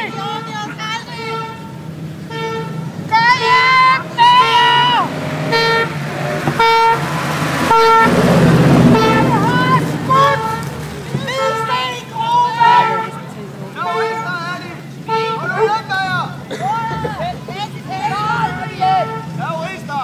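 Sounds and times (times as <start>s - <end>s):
people shouting: 0.0s - 20.0s
vehicle horn tooting: 0.0s - 20.0s.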